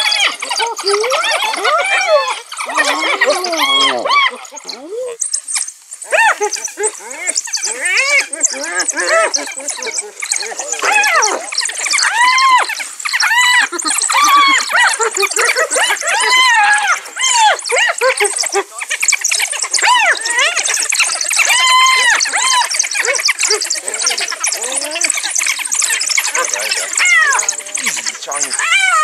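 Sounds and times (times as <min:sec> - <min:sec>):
hyenas and wild dogs calling: 0:00.0 - 0:29.0
rapid high chattering: 0:00.0 - 0:29.0
rapid high-pitched chittering: 0:00.0 - 0:29.0.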